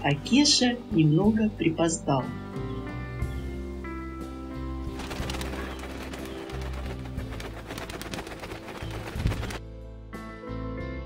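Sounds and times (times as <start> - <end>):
soft instrumental music: 0.0 - 11.0
pigeons clattering: 4.9 - 9.6.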